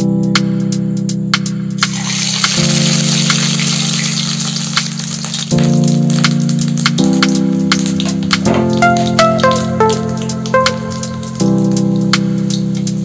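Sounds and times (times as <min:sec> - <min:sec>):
background music with held chords: 0:00.0 - 0:13.0
pastry sizzling in hot oil: 0:01.8 - 0:13.0.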